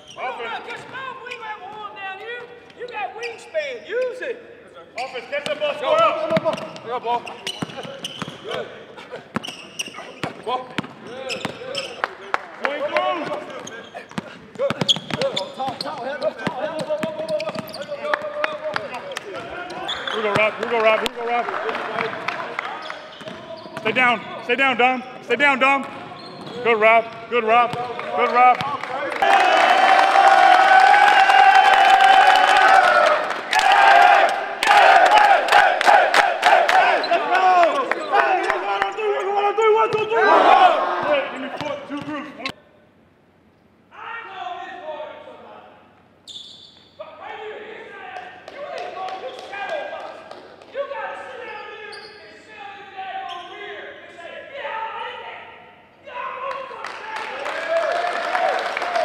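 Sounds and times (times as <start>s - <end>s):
people clapping and cheering: 12.0s - 13.2s, 18.0s - 23.1s, 27.9s - 39.1s, 48.1s - 51.0s, 56.4s - 59.0s
players shouting a held yell: 29.1s - 41.3s
team chant shouted in unison: 33.6s - 37.4s.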